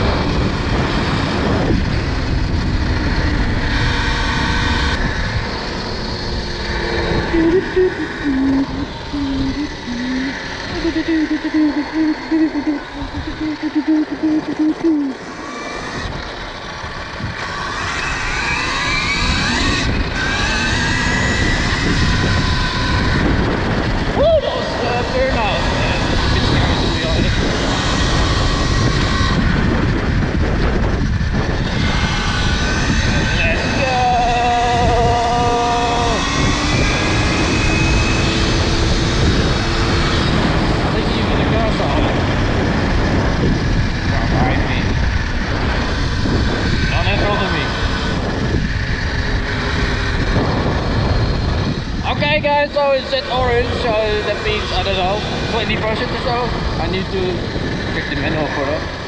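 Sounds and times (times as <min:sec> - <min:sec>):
electric motor whine: 0:00.0 - 0:59.0
wind rushing on microphone: 0:00.0 - 0:59.0.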